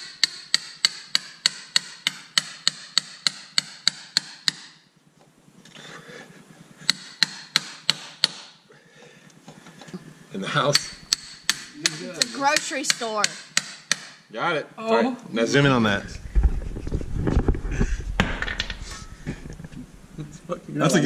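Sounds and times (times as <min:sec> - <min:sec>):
hammer striking metal rod: 0:00.0 - 0:04.8, 0:06.9 - 0:08.6, 0:10.7 - 0:14.3.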